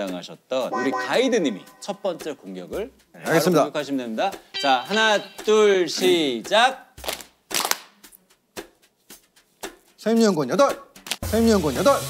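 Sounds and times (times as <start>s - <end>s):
hands clapping a steady beat: 4.9s - 11.3s.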